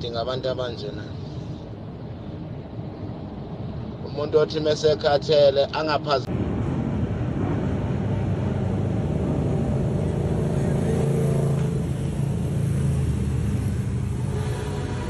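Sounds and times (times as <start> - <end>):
motorcycle engines rumbling past: 6.4 - 15.0.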